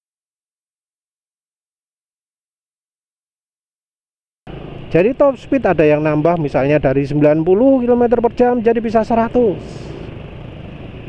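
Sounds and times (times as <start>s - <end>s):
motor scooter riding noise: 4.5s - 11.0s
man's voice: 5.0s - 10.0s.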